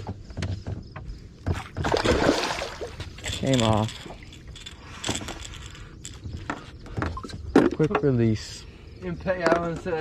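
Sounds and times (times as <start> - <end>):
fishing gear clicks and knocks: 2.8 - 8.2.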